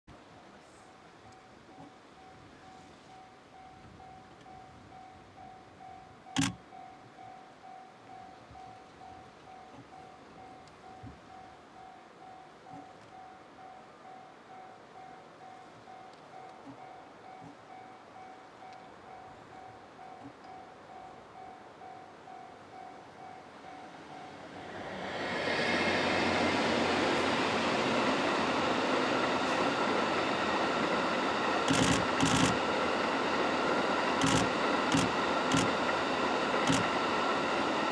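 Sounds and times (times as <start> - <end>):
faint pulsing steady tone: 0.1 - 24.7
electric locomotive passing: 0.2 - 37.9
sharp click: 31.7 - 32.6, 34.2 - 35.8, 36.7 - 36.9.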